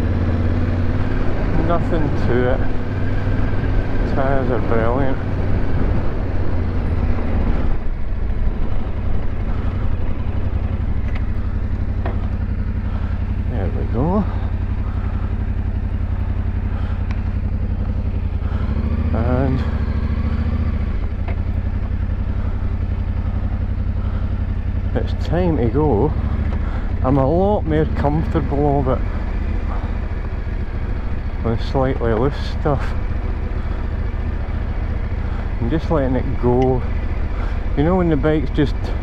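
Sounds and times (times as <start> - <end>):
motorcycle engine running: 0.0 - 39.0.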